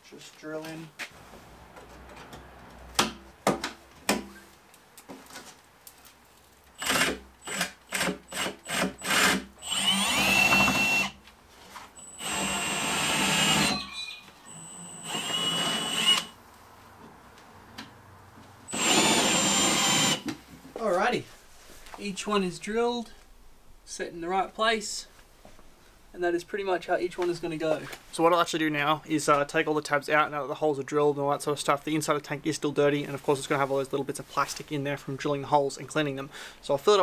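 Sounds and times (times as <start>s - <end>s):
cordless drill whining: 6.8s - 11.2s, 12.0s - 16.4s, 18.7s - 20.3s.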